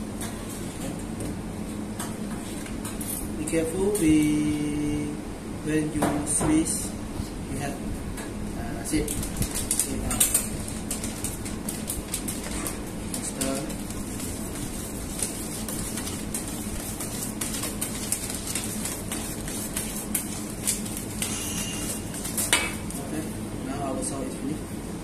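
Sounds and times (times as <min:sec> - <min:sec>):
low background hum: 0:00.0 - 0:25.0.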